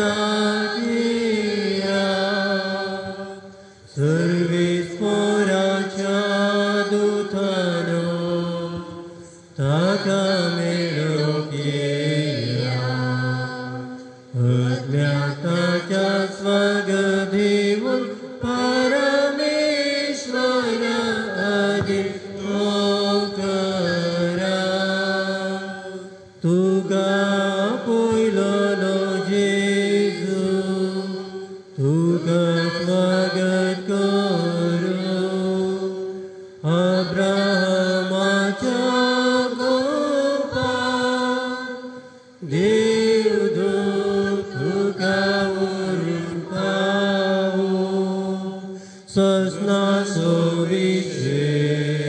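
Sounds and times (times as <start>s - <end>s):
person singing a chant-like hymn: 0.0s - 52.0s
singer breathing: 3.5s - 4.0s, 9.1s - 9.6s, 36.2s - 36.6s, 42.0s - 42.4s, 48.7s - 49.1s.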